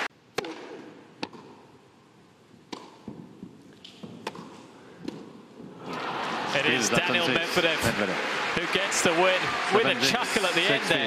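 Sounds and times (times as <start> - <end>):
tennis racquet strikes and bounces: 0.3 - 1.7, 2.6 - 5.5.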